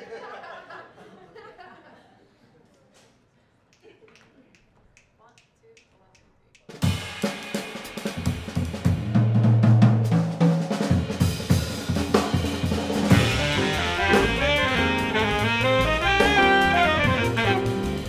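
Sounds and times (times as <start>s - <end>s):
jazz drum kit: 6.6s - 18.0s
piano: 12.6s - 18.0s
double bass: 13.1s - 18.0s
saxophones: 13.1s - 18.0s.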